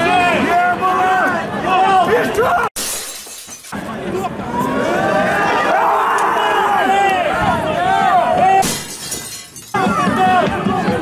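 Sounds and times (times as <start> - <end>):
players and spectators shouting: 0.0 - 2.7, 3.8 - 8.7, 9.7 - 11.0.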